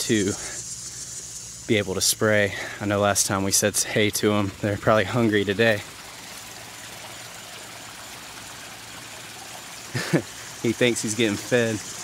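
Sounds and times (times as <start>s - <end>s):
water trickling over rocks: 0.0s - 12.0s.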